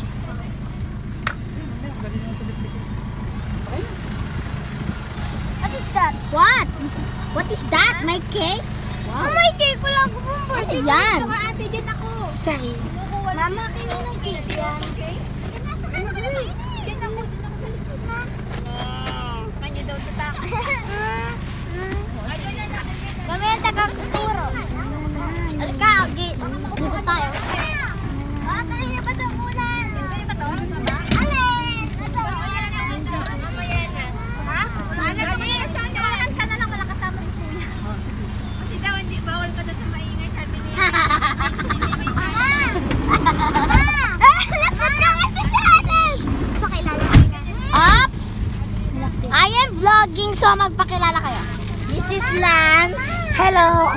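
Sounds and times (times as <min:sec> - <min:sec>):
people chatting: 0:00.0 - 0:53.9
people talking and exclaiming: 0:00.0 - 0:53.9
van engine idling: 0:00.0 - 0:53.9
vehicle cabin rumble: 0:00.0 - 0:53.9.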